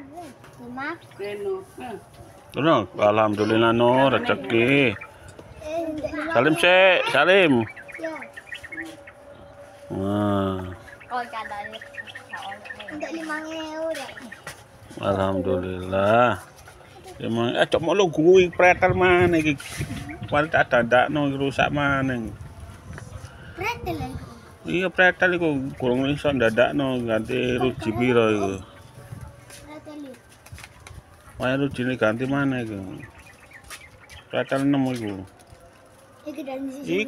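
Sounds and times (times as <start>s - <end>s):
children's voices talking: 0.0s - 2.1s, 3.0s - 9.3s, 10.4s - 15.3s, 16.4s - 18.7s, 23.2s - 31.4s, 36.1s - 37.0s
small birds chirping: 0.2s - 37.0s.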